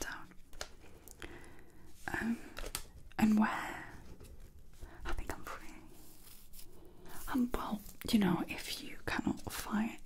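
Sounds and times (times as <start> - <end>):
woman whispering: 0.0 - 0.4, 3.2 - 4.0, 5.0 - 6.0, 7.1 - 10.0.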